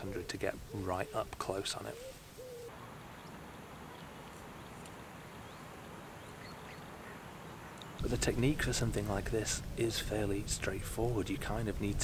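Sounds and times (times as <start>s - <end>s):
faint bird calls: 0.0s - 8.0s.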